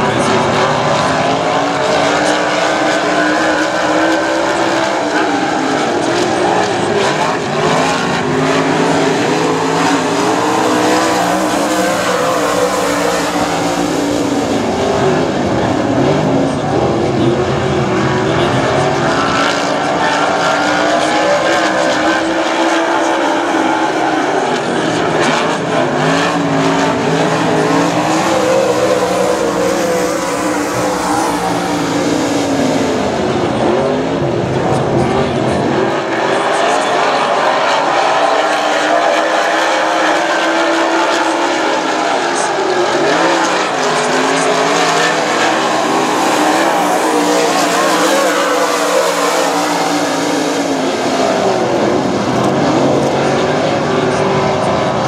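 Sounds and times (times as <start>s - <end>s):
race car engines revving: 0.0s - 55.0s.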